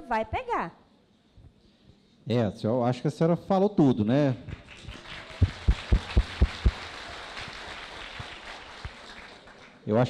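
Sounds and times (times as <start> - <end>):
audience applause: 4.6 - 9.8.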